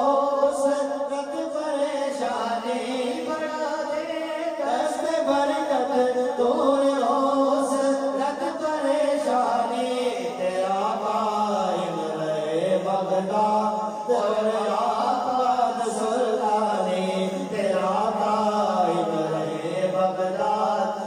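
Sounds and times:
men chanting through microphones: 0.0s - 21.0s.

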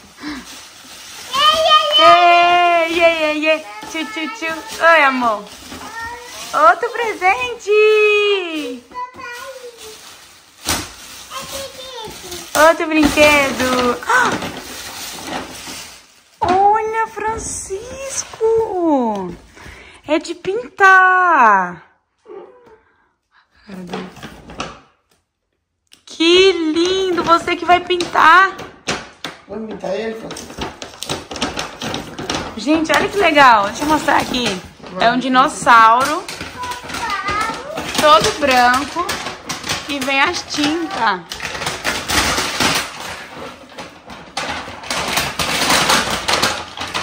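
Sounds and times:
toddler crying: 22.2s - 22.9s.

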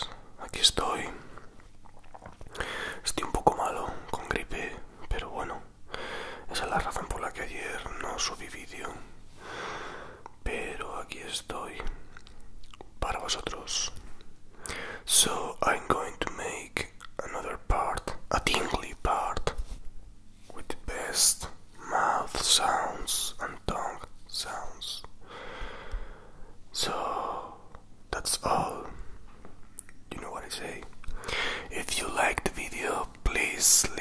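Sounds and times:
breathy whispering sounds: 0.0s - 19.8s, 20.4s - 34.0s
mouth clicks and tongue pops: 1.6s - 2.6s, 12.1s - 13.0s, 29.8s - 30.0s.

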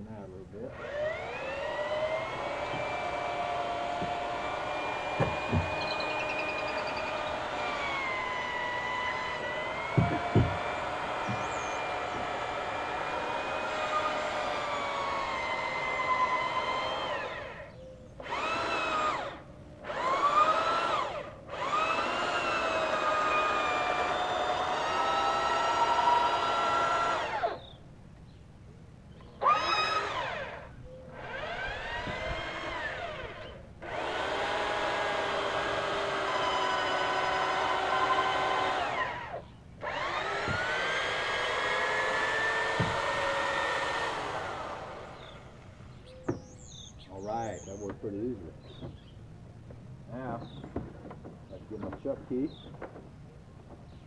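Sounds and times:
electric drill boring into wood: 0.6s - 27.7s, 29.4s - 48.0s.

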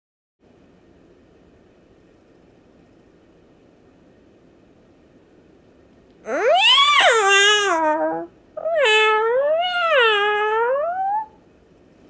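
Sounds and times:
cat meowing: 6.3s - 11.4s.

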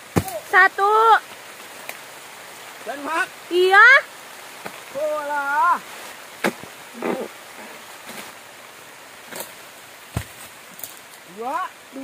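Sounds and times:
light rain hissing: 0.0s - 12.0s.

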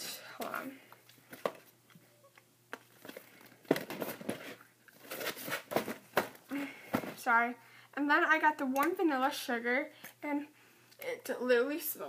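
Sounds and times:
gift bag wrapping rustling: 2.9s - 7.2s.

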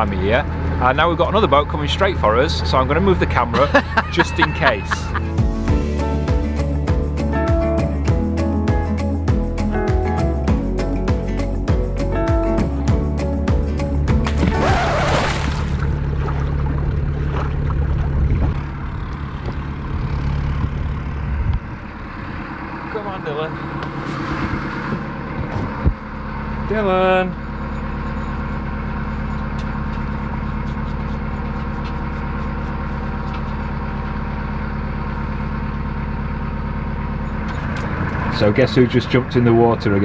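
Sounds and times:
boat engine running: 0.0s - 40.0s.

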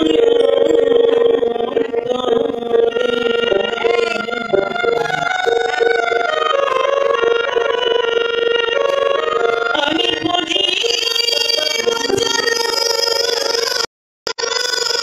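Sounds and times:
woman singing: 0.0s - 8.3s, 8.9s - 13.9s
harmonium reedy note: 0.0s - 15.0s.

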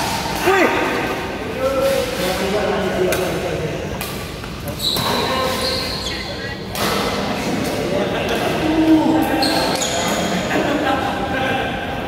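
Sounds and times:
shoes squeaking on court floor: 4.6s - 6.8s, 9.4s - 10.3s.

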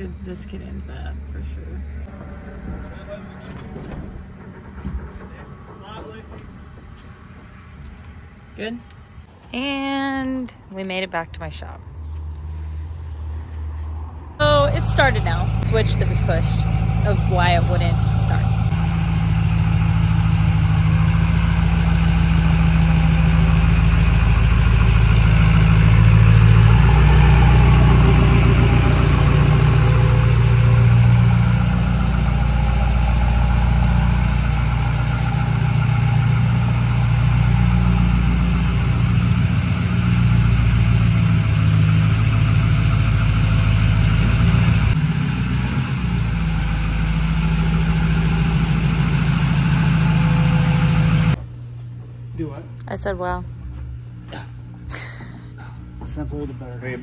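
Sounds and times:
diesel engine idling: 0.0s - 9.8s, 14.4s - 51.5s.

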